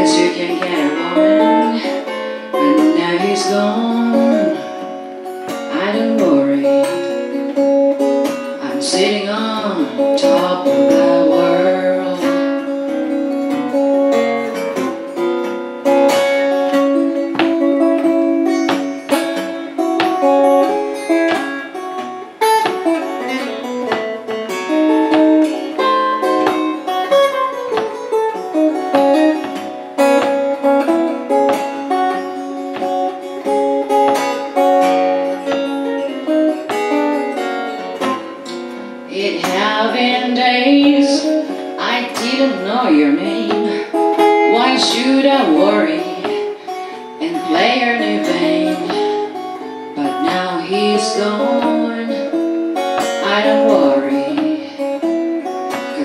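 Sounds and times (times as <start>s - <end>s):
fingerpicked acoustic guitar: 0.0s - 56.0s
sliding bending guitar lead: 0.0s - 56.0s.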